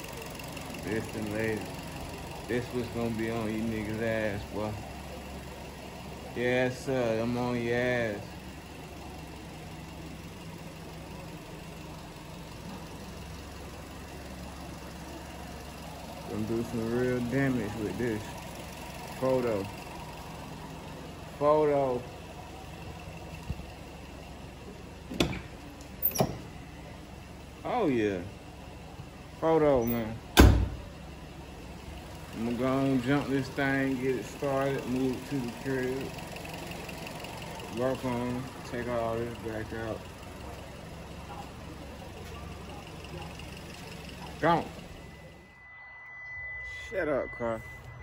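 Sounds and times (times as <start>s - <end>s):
engine idling: 0.0s - 48.0s
car door shutting: 25.1s - 26.5s, 30.3s - 30.9s.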